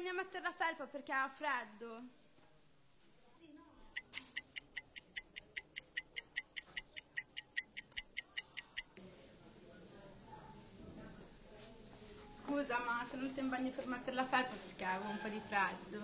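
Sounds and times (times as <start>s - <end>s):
fast clock ticking: 3.9s - 9.0s.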